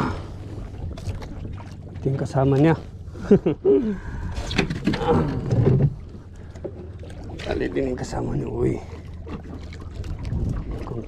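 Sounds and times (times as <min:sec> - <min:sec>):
sea: 0:00.0 - 0:11.0
wind: 0:00.0 - 0:11.0.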